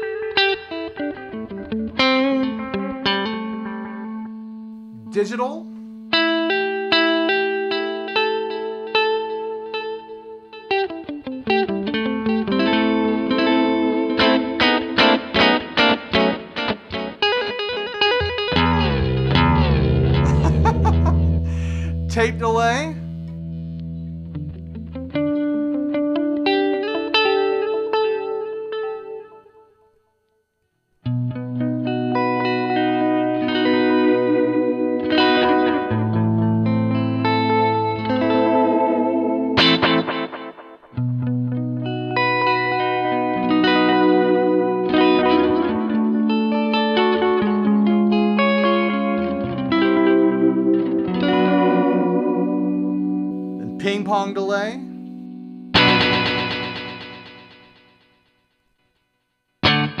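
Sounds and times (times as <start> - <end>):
electric guitar with echoing delay: 0.0 - 29.7, 31.0 - 58.2, 59.6 - 60.0.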